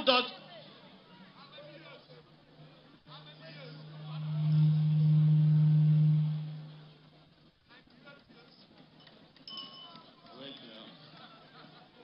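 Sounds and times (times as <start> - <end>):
steady low-pitched hum: 3.1 - 7.1.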